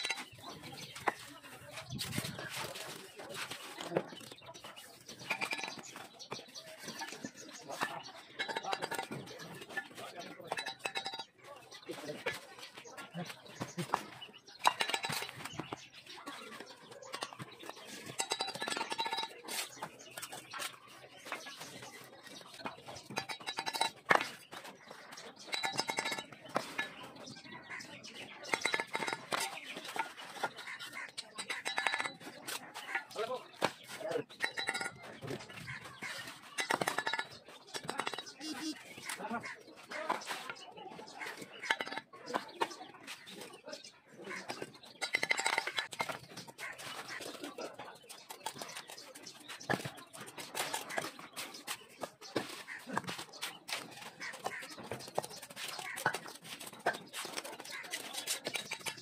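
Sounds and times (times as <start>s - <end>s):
trowel clinking on bricks: 0.0s - 1.3s, 5.1s - 9.9s, 10.5s - 11.4s, 14.6s - 15.8s, 16.5s - 20.4s, 22.4s - 24.5s, 25.4s - 39.2s, 41.3s - 42.6s, 44.4s - 47.3s, 48.2s - 59.0s
voices: 0.0s - 59.0s.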